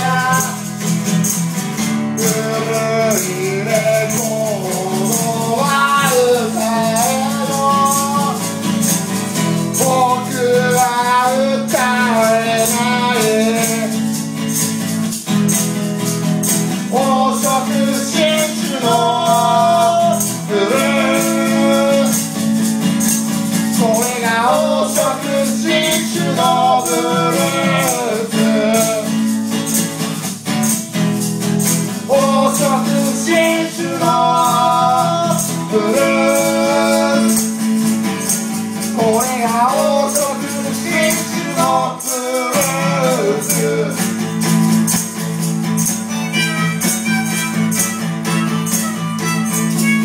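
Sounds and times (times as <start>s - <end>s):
man singing: 0.0s - 0.8s, 1.8s - 14.2s, 16.8s - 22.7s, 23.5s - 29.4s, 31.9s - 44.2s
maracas shaking: 0.0s - 50.0s
strummed acoustic guitar: 0.0s - 50.0s.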